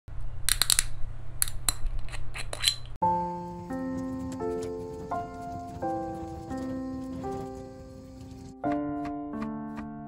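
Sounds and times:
metal screw cap twisting open: 0.5s - 3.0s.

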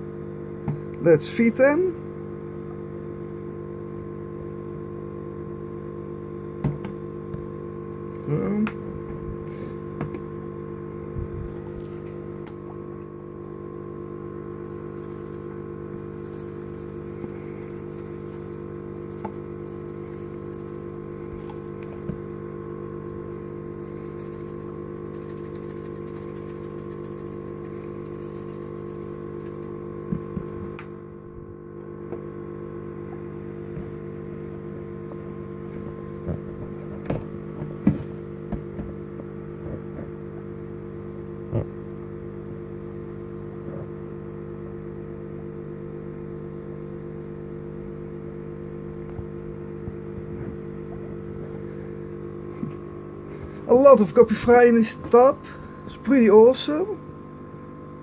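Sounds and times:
aquarium pump humming: 0.0s - 58.0s
water bubbling: 32.9s - 57.6s.

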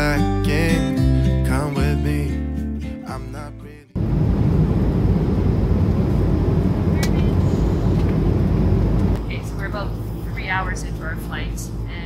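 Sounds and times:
jet airliner cabin noise: 4.0s - 12.0s.

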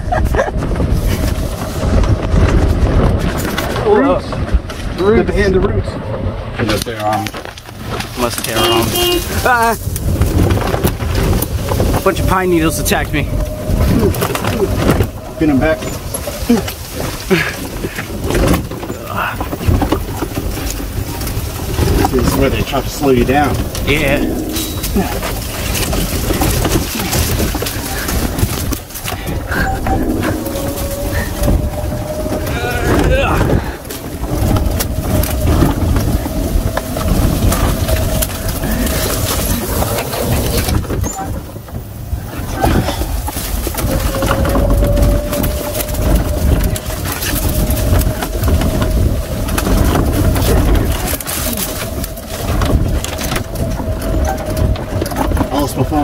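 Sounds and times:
cart rumbling and rattling: 0.0s - 56.0s.

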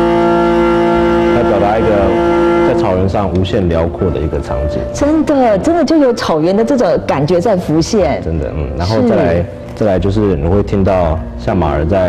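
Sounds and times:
bowed fiddle holding a note: 0.0s - 4.8s
man speaking: 1.4s - 5.0s, 8.4s - 12.0s.

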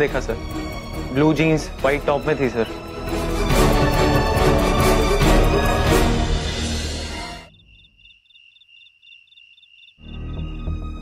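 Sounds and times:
background music: 0.0s - 7.6s, 10.0s - 11.0s
crickets chirping: 7.4s - 11.0s.

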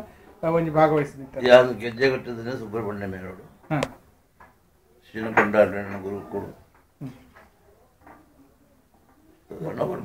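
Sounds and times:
man speaking: 5.1s - 7.2s.

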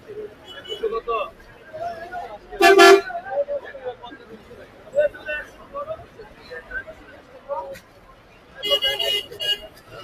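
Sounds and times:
murmur of market voices: 0.0s - 10.0s
vehicle horn honking: 2.6s - 3.1s.

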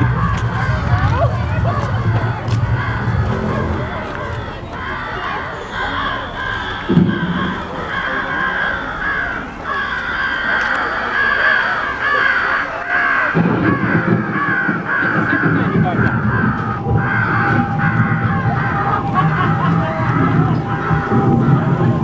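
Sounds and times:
deep loud layer of sound: 0.0s - 22.0s
people's voices: 0.0s - 22.0s
crow cawing: 2.7s - 22.0s.

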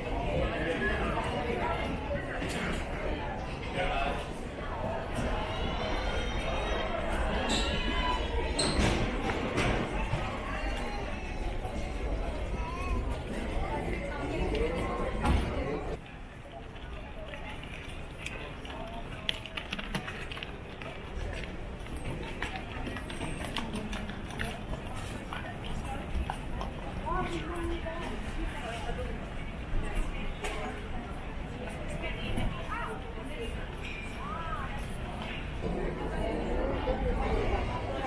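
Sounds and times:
crowd chatter: 0.0s - 38.0s
hubbub of indistinct voices: 0.0s - 38.0s
rolling suitcases: 0.0s - 38.0s.

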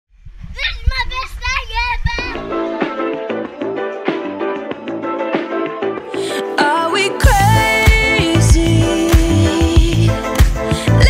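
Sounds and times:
child shouting: 0.6s - 2.6s.

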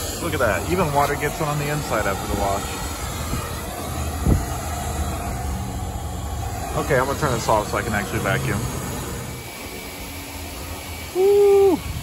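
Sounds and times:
vacuum drone with high whine: 0.0s - 12.0s.

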